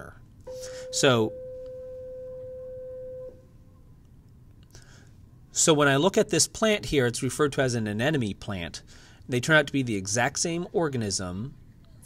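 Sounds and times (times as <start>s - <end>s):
steady electronic beep: 0.5s - 3.4s.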